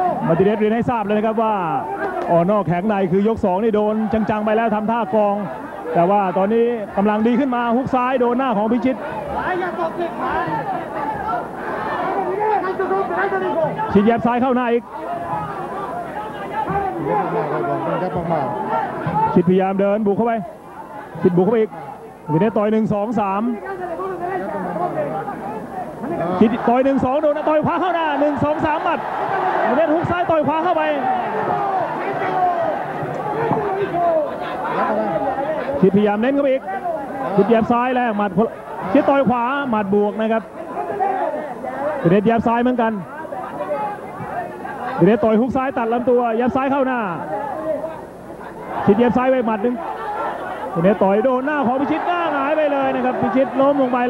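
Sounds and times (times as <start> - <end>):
crowd chatter: 0.0 - 54.0
voices talking: 3.0 - 54.0.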